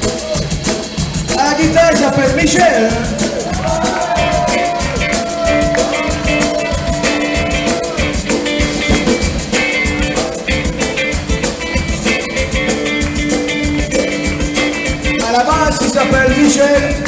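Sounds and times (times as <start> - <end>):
live zydeco band playing: 0.0 - 17.0
person singing: 1.3 - 8.6, 9.6 - 17.0.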